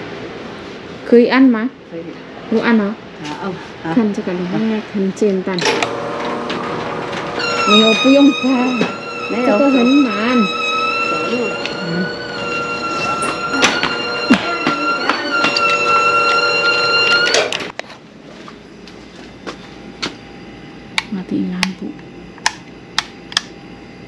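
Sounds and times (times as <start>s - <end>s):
loud steady whine: 0.0s - 24.0s.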